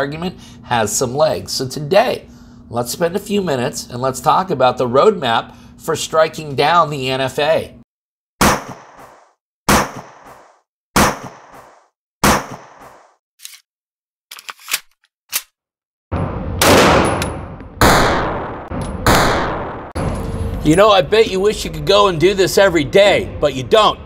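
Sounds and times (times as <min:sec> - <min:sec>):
gunshots ringing off: 0:11.0 - 0:13.0, 0:16.6 - 0:20.0
heavy booms: 0:16.1 - 0:21.5
sustained rumble: 0:18.6 - 0:24.0.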